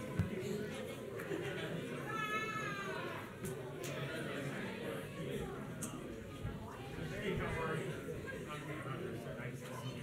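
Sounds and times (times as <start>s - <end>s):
murmur of a crowd: 0.0s - 10.0s.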